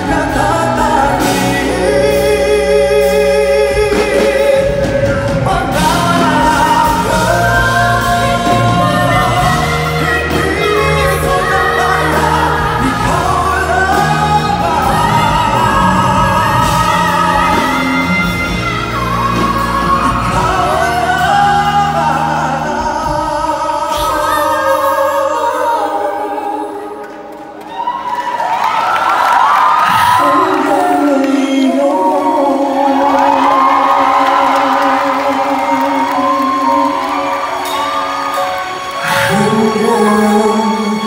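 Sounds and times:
man and woman singing duet: 0:00.0 - 0:27.4, 0:29.2 - 0:41.0
band accompaniment: 0:00.0 - 0:41.0.

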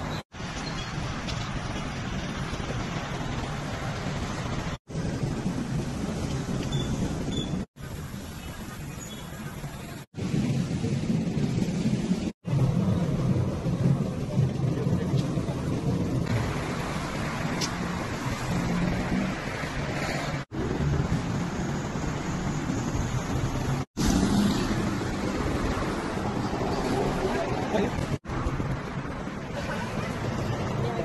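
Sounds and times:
steady outdoor hiss: 0:00.0 - 0:31.0
vehicle engines rumbling: 0:00.0 - 0:31.0.

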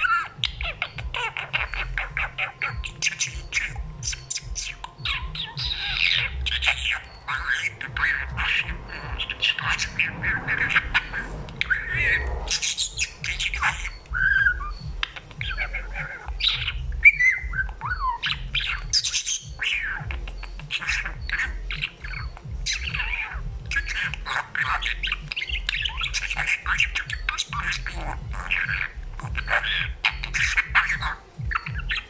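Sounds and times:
budgerigar chattering and warbling: 0:00.0 - 0:32.0.

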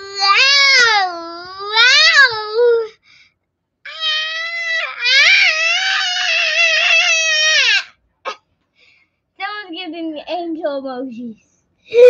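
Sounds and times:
girl whining cry: 0:00.0 - 0:02.9, 0:03.9 - 0:07.9.

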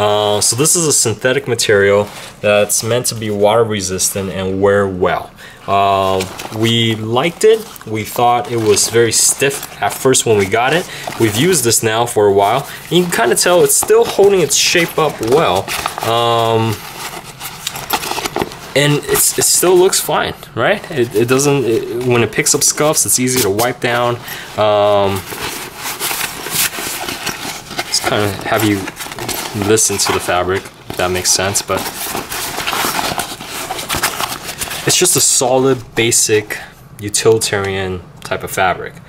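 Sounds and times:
stiff backpack fabric rustling: 0:05.8 - 0:20.2, 0:20.9 - 0:35.4.

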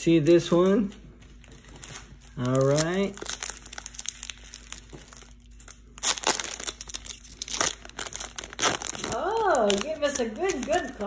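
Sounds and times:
foil wrapper tearing and crinkling: 0:01.6 - 0:11.0.

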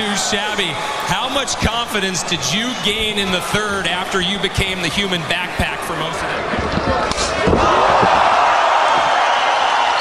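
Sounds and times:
crowd cheering loudly: 0:00.0 - 0:10.0.

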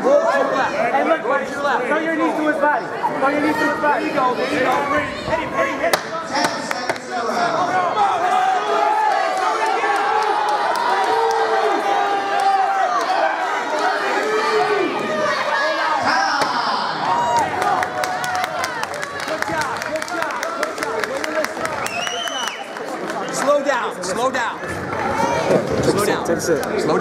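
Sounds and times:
crowd shouting and yelling: 0:00.0 - 0:27.0.

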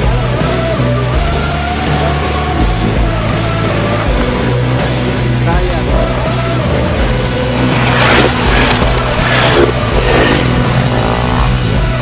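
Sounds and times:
song with vocals and bass: 0:00.0 - 0:12.0.

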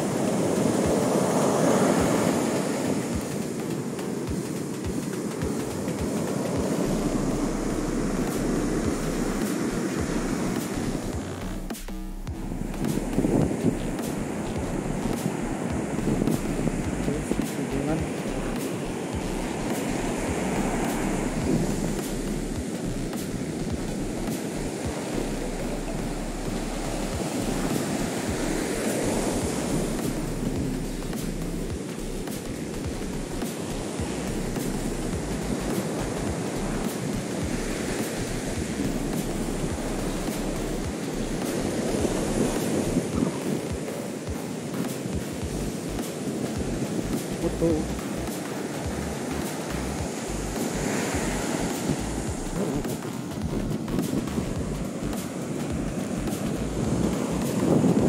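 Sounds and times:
ocean surf breaking on beach: 0:00.0 - 0:58.0
wind buffeting microphone: 0:12.3 - 0:58.0.

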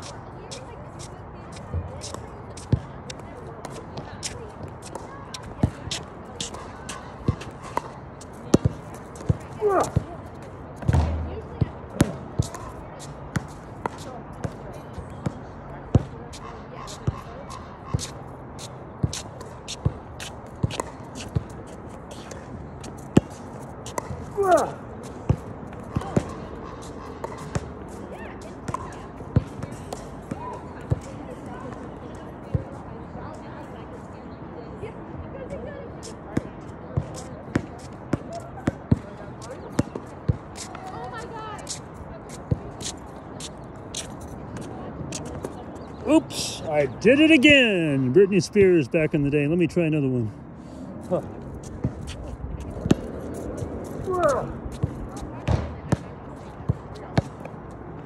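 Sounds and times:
basketball bouncing on court: 0:10.8 - 0:12.7, 0:54.7 - 0:56.1.

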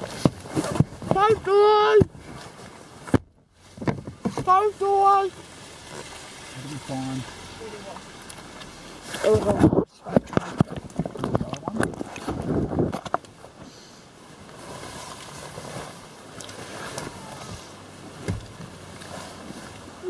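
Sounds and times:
steady hiss: 0:02.2 - 0:09.4
camera handling rustling and knocks: 0:09.4 - 0:13.6
faint voices: 0:16.8 - 0:17.9.

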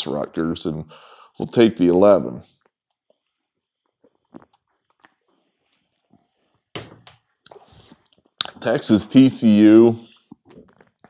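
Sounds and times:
man breathing out: 0:00.9 - 0:01.4
man gulping and swallowing: 0:02.4 - 0:06.6, 0:07.2 - 0:08.8, 0:10.1 - 0:11.0.

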